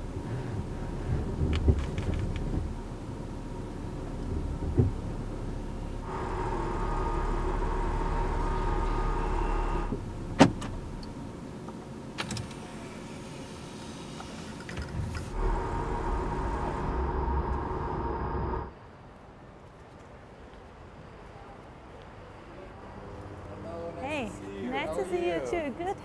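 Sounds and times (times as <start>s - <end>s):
electric motor whine: 6.0s - 10.0s, 15.2s - 18.7s.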